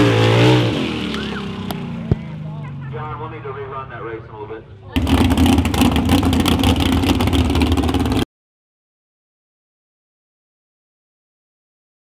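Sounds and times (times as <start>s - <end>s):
truck engine running hard: 0.0s - 8.2s.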